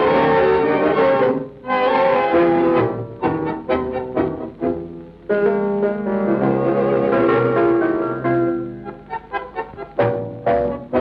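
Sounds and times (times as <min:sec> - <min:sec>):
tango orchestra with strings: 0:00.0 - 0:11.0.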